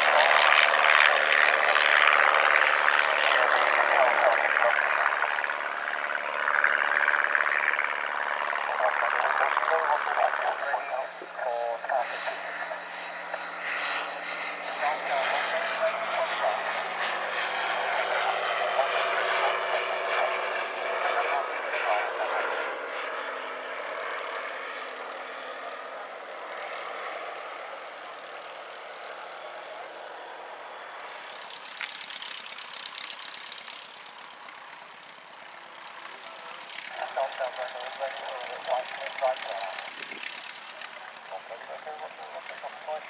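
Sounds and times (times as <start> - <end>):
light aircraft engine and propeller: 0.0 - 43.0.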